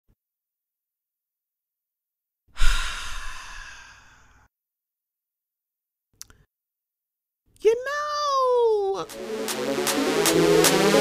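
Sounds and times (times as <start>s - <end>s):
breathy sigh: 2.5s - 4.5s.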